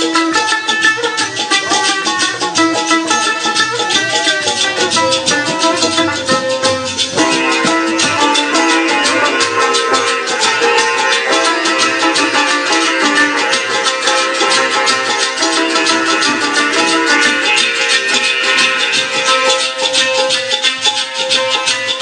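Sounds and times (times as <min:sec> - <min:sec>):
sitars playing folk tune: 0:00.0 - 0:22.0.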